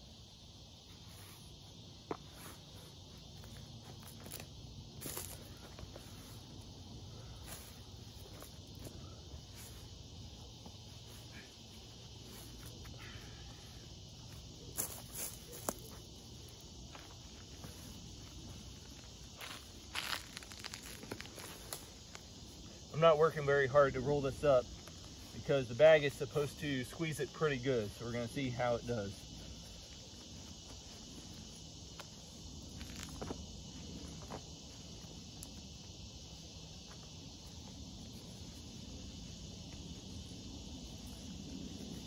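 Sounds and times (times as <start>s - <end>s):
faint drone of insects: 0.0s - 42.0s.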